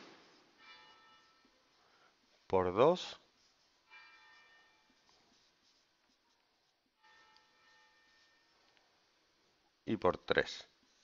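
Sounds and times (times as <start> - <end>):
marker squeaking on whiteboard: 3.3 - 8.8.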